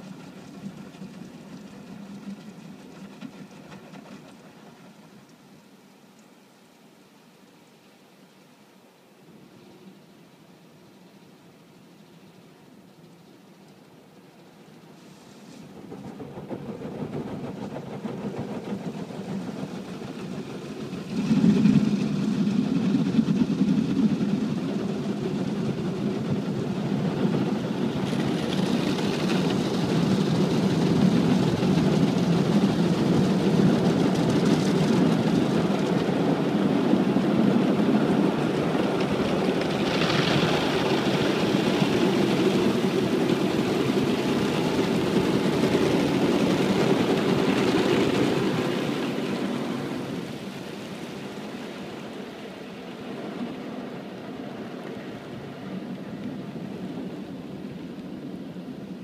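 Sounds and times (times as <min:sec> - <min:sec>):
car wash machine rumble: 0:14.9 - 0:58.9.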